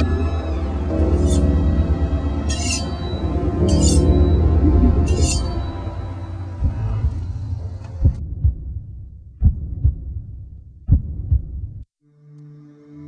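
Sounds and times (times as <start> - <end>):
low drone: 0.0 - 10.2
heartbeat thumps: 3.2 - 11.8.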